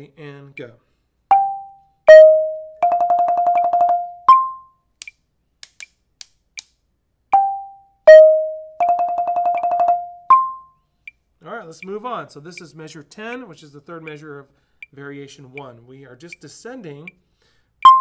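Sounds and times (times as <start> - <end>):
marimba notes: 1.3 - 4.6, 7.4 - 10.7.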